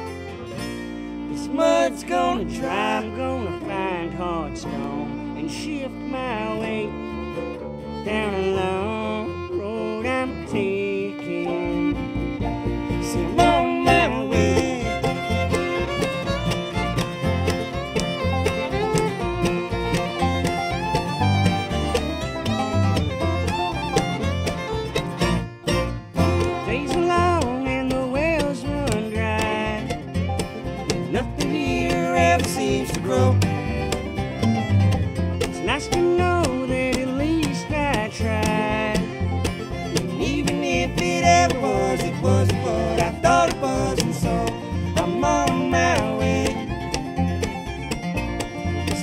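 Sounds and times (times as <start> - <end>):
bluegrass string band playing: 0.0 - 49.0
plucked upright bass: 0.0 - 49.0.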